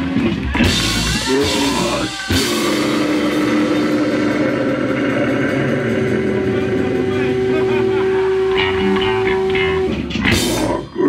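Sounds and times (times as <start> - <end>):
distorted electric guitar and bass drone: 0.0 - 11.0
feedback tone: 0.6 - 11.0.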